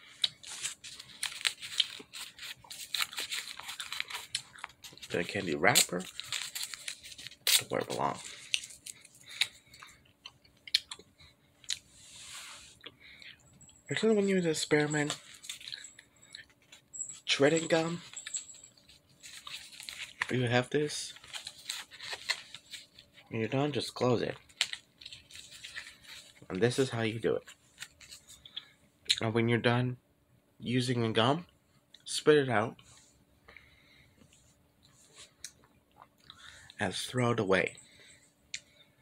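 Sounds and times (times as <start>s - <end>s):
foil gum wrapper crinkling: 0.0s - 9.8s, 19.2s - 23.2s, 23.8s - 26.8s.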